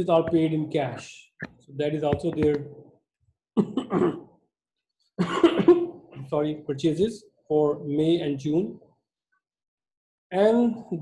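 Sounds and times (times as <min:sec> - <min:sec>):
man coughing: 0:03.6 - 0:04.2, 0:05.2 - 0:05.9.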